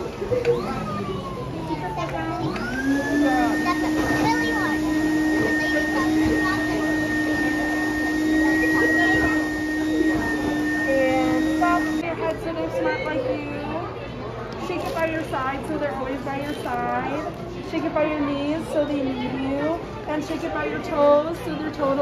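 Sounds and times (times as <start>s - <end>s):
blower motor running: 0.0s - 12.0s.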